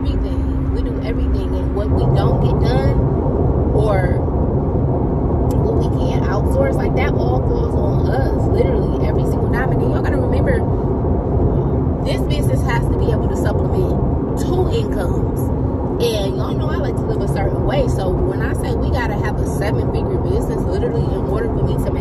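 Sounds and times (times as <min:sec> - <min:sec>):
woman talking: 0:00.0 - 0:03.0, 0:03.8 - 0:04.2, 0:05.5 - 0:10.7, 0:12.0 - 0:22.0
car road noise: 0:00.0 - 0:22.0.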